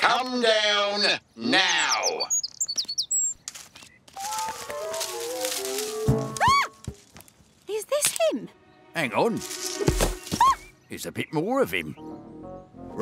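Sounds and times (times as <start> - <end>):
high bird chirps: 1.6 - 5.2.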